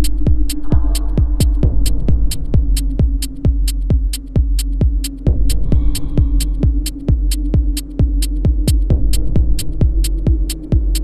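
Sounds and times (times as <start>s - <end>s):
crisp hi-hats: 0.0s - 11.0s
kick drum: 0.0s - 11.0s
low synth drone: 0.0s - 11.0s.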